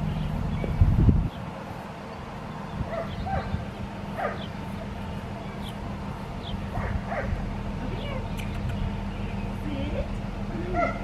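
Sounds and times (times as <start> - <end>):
steady low hum: 0.0 - 11.0
dog yipping: 10.8 - 11.0.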